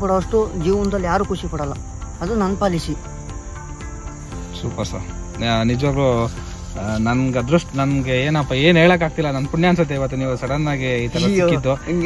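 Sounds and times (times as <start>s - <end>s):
background music: 0.0s - 12.0s
crickets chirping: 0.0s - 12.0s
man talking: 4.6s - 11.8s.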